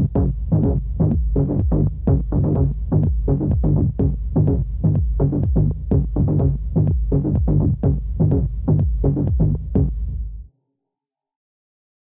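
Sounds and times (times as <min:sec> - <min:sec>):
techno music: 0:00.0 - 0:10.1.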